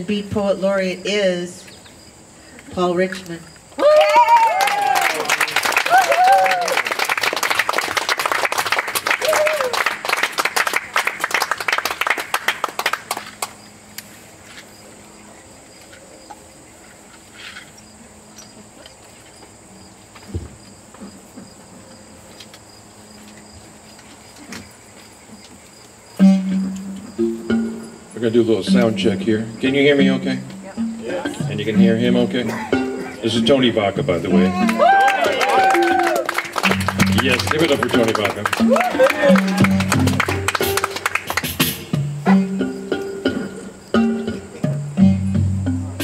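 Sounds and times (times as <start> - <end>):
insects chirring: 0.0 - 38.7, 39.6 - 46.0
whoops: 3.8 - 7.0, 9.1 - 9.9, 34.4 - 36.4, 38.6 - 39.9
audience applauding and cheering: 3.8 - 13.5, 34.4 - 41.6
thump: 20.3 - 20.6.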